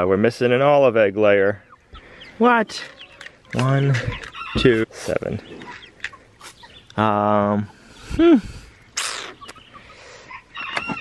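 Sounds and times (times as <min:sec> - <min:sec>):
chickens clucking: 0:00.0 - 0:11.0
short high chicken calls: 0:04.1 - 0:04.8, 0:09.0 - 0:11.0.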